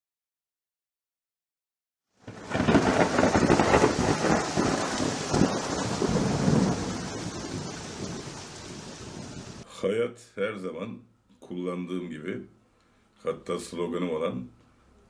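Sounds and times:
steady rain: 0:02.1 - 0:09.7
rolling thunder: 0:02.2 - 0:09.6.

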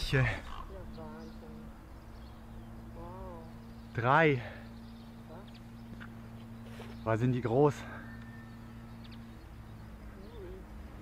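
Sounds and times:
low hum: 0:00.0 - 0:11.0
faint high chirp: 0:04.6 - 0:11.0.

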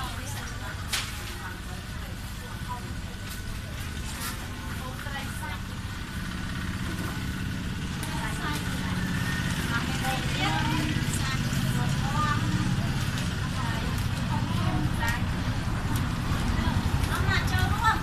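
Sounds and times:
women and children talking: 0:00.0 - 0:18.0
low engine hum: 0:01.4 - 0:18.0.

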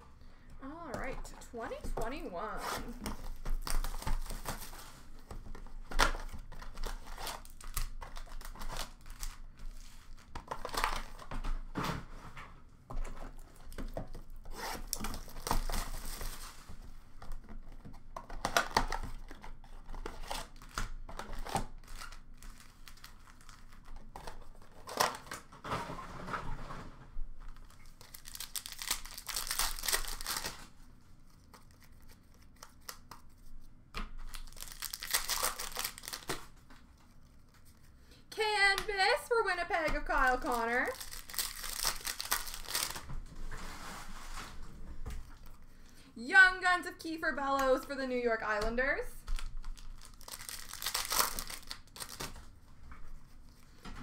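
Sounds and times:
cardboard and wrappers tearing: 0:02.4 - 0:11.3, 0:13.3 - 0:16.7, 0:17.6 - 0:25.5, 0:27.6 - 0:33.3, 0:34.2 - 0:37.7, 0:40.1 - 0:43.1, 0:49.3 - 0:52.5
cards clicking and rustling: 0:27.8 - 0:30.7, 0:31.3 - 0:37.9, 0:40.9 - 0:43.0, 0:49.3 - 0:52.4.

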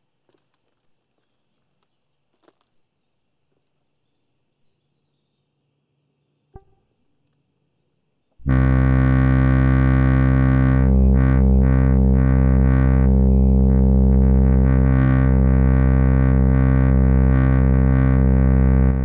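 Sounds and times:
sustained synthesizer chord: 0:08.4 - 0:19.0.

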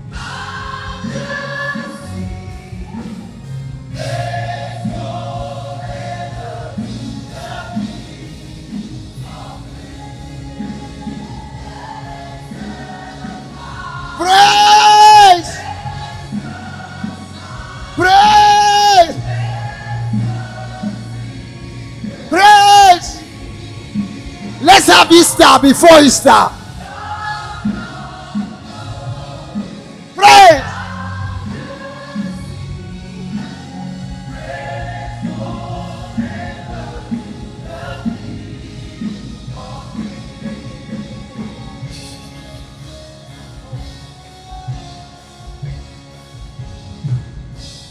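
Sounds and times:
backing music: 0:00.0 - 0:47.9
choir singing gospel song: 0:00.0 - 0:47.9.

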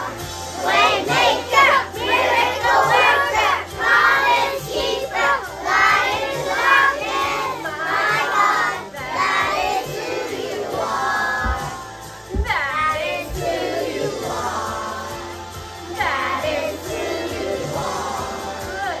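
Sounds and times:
children singing: 0:00.0 - 0:19.0
recorded worship song music: 0:00.0 - 0:19.0.

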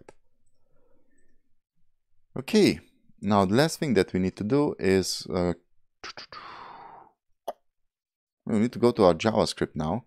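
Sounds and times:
person breathing softly: 0:06.2 - 0:07.2.

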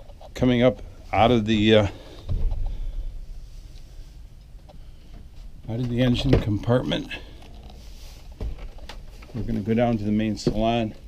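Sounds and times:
handling noise: 0:04.4 - 0:11.0.

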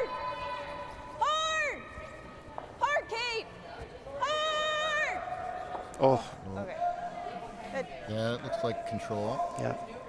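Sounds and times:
curling players shouting calls: 0:04.2 - 0:10.0.

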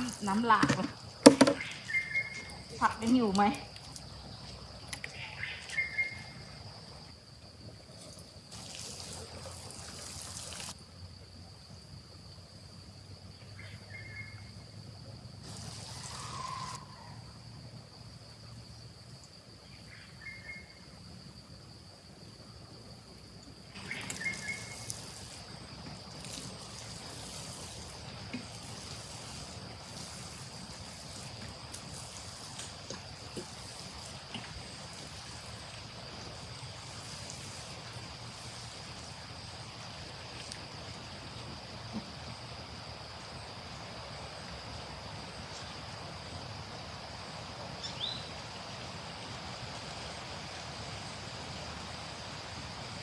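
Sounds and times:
high insect drone: 0:00.0 - 0:53.0
water poured onto soil: 0:07.9 - 0:10.8, 0:15.4 - 0:16.8, 0:23.7 - 0:40.7.

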